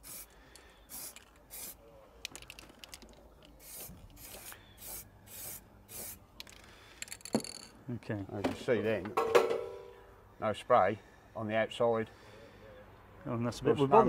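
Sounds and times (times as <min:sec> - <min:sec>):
aerosol spray can hissing: 0:00.0 - 0:00.3, 0:00.9 - 0:01.8, 0:03.6 - 0:06.2.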